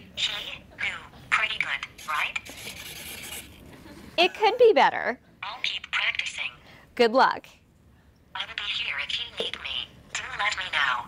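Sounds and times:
synthesized female voice speaking: 4.2 - 7.5, 8.4 - 11.0.

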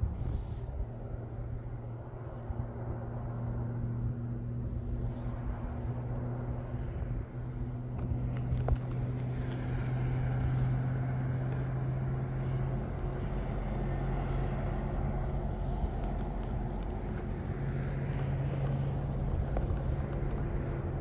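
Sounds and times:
cars passing: 0.0 - 21.0
steady low hum: 0.0 - 21.0.

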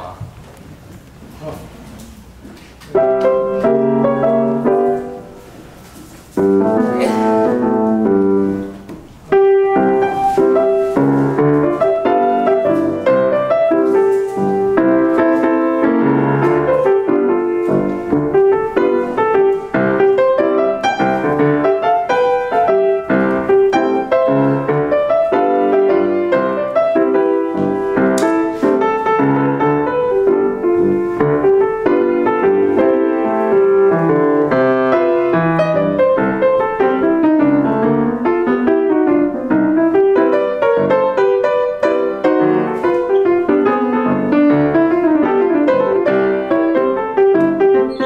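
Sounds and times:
jazz piano: 0.0 - 48.0.

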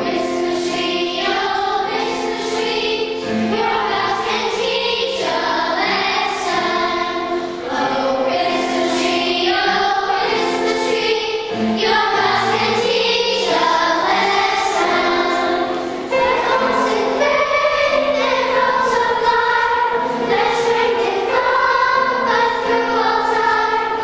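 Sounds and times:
children's choir singing: 0.0 - 24.0.

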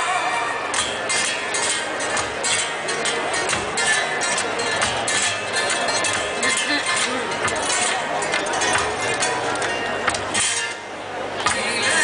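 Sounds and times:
sharp percussive accents: 0.0 - 12.0
strummed guitar: 0.0 - 12.0.

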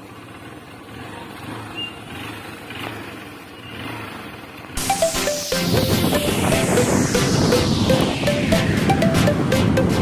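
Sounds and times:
motorcycle engine idling: 0.0 - 4.7
electronic music: 4.8 - 10.0.

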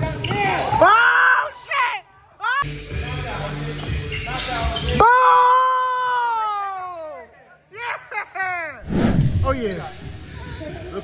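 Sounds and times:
players' voices in echoing hall: 0.0 - 11.0.

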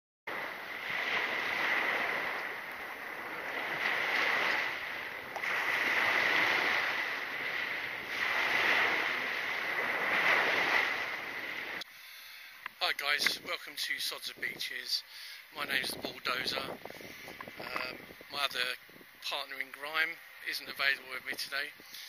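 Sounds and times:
small waves breaking on shore: 0.3 - 11.9.

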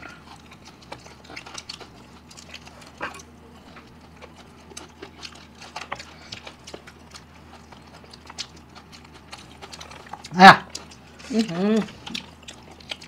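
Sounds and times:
people chewing meat: 0.0 - 13.0.

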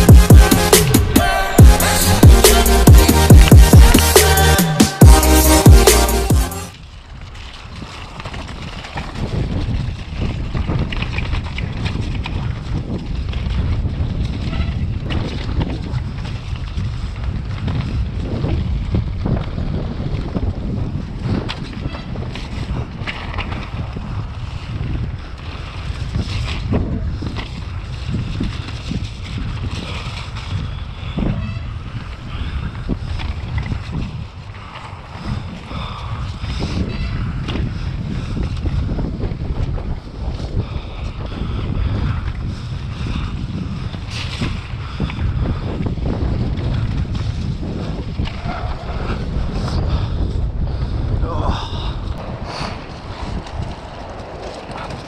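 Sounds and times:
bike rattling over bumps: 6.7 - 55.0
wind buffeting camera: 6.7 - 55.0
bike knocks and rattles: 7.9 - 25.1.

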